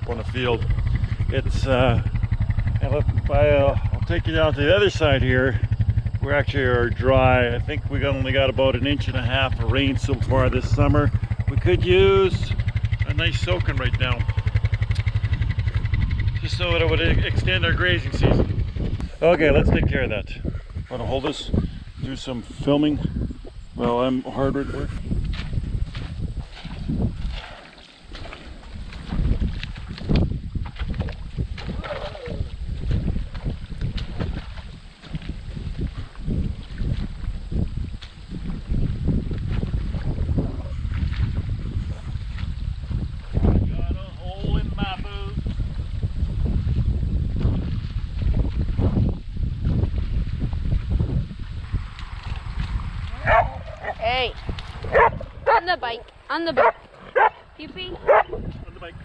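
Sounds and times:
heavy low rumble: 0:00.0 - 0:27.2, 0:28.8 - 0:59.0
water splashing: 0:25.3 - 0:41.5, 0:51.7 - 0:59.0.

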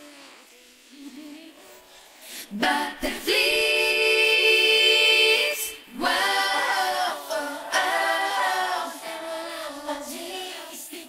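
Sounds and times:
women singing in harmony: 0:00.9 - 0:11.0.

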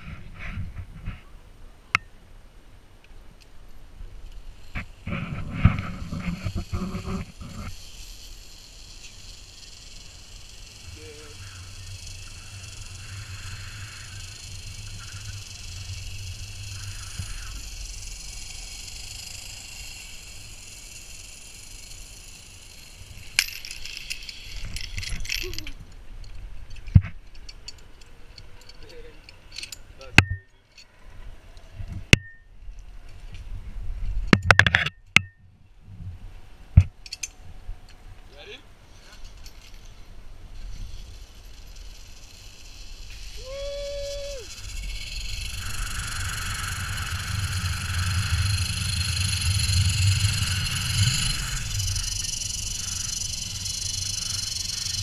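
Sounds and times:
wind rumble on microphone: 0:00.0 - 0:01.6, 0:04.0 - 0:08.1, 0:31.0 - 0:38.3, 0:43.0 - 0:55.0
pulleys hissing along cable: 0:04.6 - 0:25.0, 0:40.6 - 0:55.0
carabiners clinking: 0:17.8 - 0:31.0, 0:37.0 - 0:37.4, 0:39.0 - 0:43.6.

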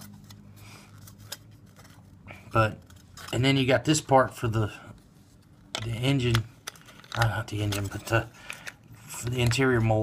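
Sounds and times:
low steady hum: 0:00.0 - 0:10.0
plastic parts clicking and rustling: 0:05.7 - 0:10.0.

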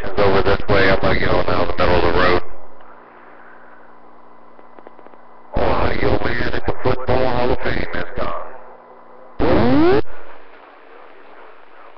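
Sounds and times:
voice over radio: 0:00.0 - 0:02.5, 0:05.6 - 0:08.7
radio static hiss: 0:00.0 - 0:11.9.

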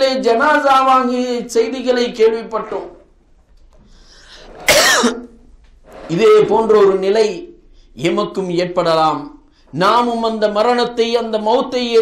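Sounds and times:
intake of breath: 0:03.8 - 0:04.6
man coughing: 0:04.7 - 0:05.4.

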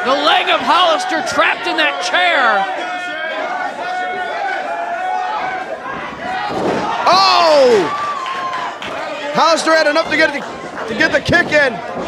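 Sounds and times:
crowd yelling and chanting: 0:00.0 - 0:12.0
thud: 0:05.4 - 0:07.2.

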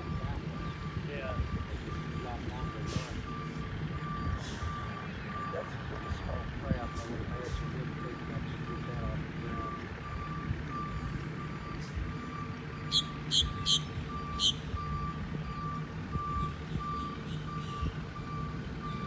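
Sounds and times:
distant plane engine droning: 0:00.0 - 0:19.0
short high chirps: 0:12.9 - 0:14.7.

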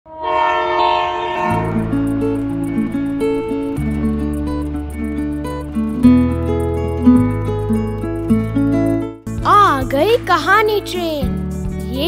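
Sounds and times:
train horn chord: 0:00.0 - 0:05.4
music with bass and ticking beat: 0:01.5 - 0:12.0.

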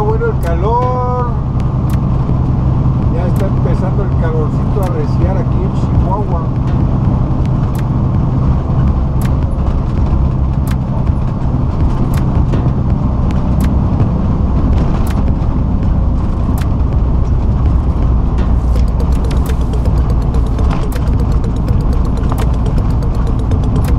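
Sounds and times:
truck engine and road drone: 0:00.0 - 0:23.9.

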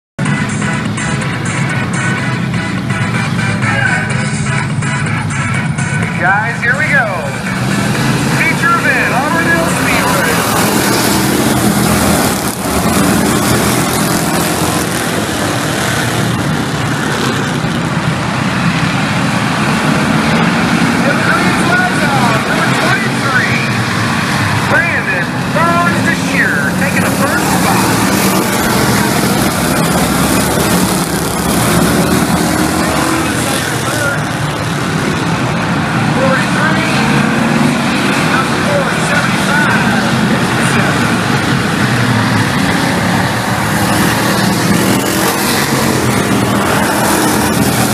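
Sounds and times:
race car engines revving: 0:00.2 - 0:47.9
spectators' voices: 0:03.5 - 0:16.2, 0:24.4 - 0:47.9.

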